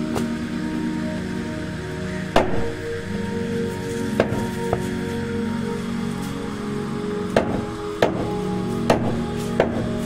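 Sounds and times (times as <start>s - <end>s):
background music: 0.0s - 10.0s
meat cleaver chopping bones: 7.4s - 10.0s.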